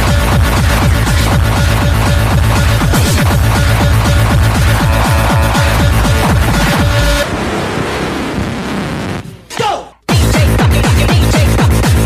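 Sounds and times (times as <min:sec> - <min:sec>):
distorted kick drum pounding: 0:00.0 - 0:07.4.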